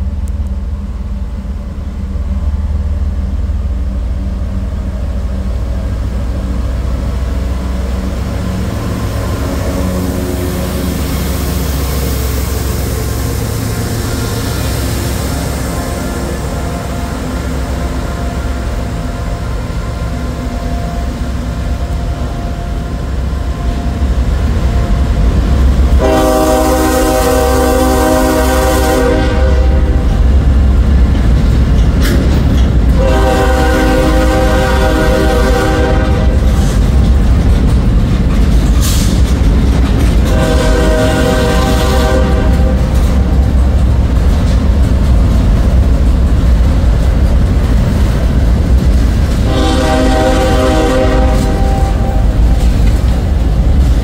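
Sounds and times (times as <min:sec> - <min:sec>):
locomotive engine rumbling: 0:00.0 - 0:54.0
train wheels rumbling: 0:00.0 - 0:54.0
locomotive air horn chord: 0:26.0 - 0:30.2, 0:33.0 - 0:36.5, 0:40.3 - 0:43.2, 0:49.4 - 0:52.4.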